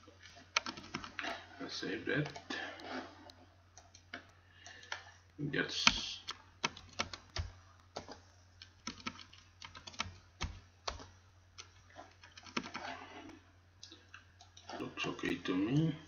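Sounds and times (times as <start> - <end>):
faint low hum: 0.0 - 16.0
computer keyboard typing: 0.5 - 1.3, 2.2 - 2.5, 3.8 - 5.1, 5.8 - 13.4.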